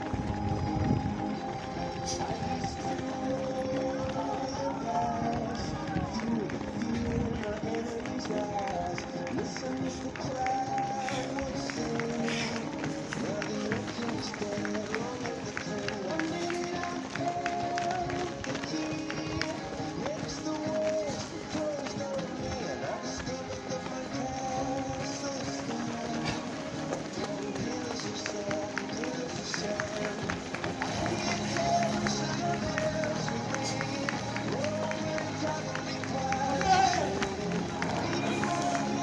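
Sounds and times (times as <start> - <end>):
music: 0.0 - 39.0
runners footfalls on asphalt: 0.0 - 39.0
voices: 0.0 - 39.0.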